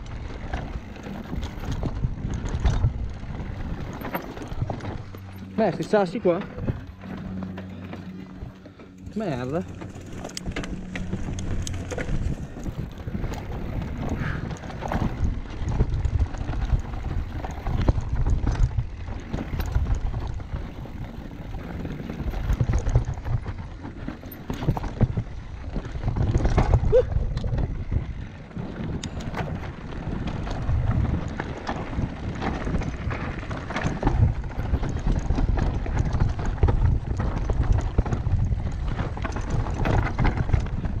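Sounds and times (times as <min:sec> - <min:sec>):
bike rattling and knocking: 0:00.0 - 0:41.0
tyres on dirt and stones: 0:00.0 - 0:41.0
wind buffeting microphone: 0:00.0 - 0:41.0.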